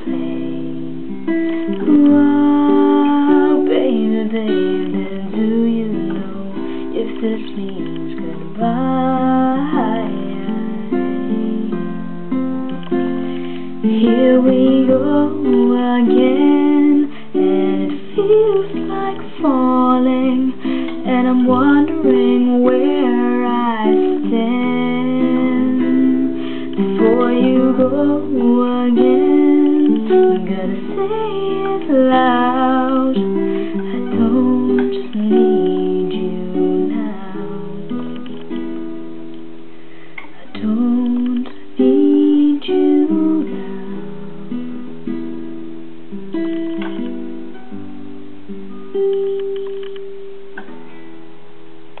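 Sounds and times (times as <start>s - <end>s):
person singing: 0.0s - 38.8s, 40.2s - 44.8s
acoustic guitar chords: 0.0s - 52.0s.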